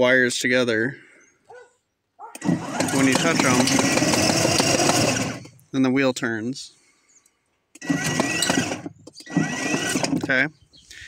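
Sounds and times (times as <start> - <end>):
electric motor and gearbox whirring: 2.3 - 5.7, 7.7 - 10.5.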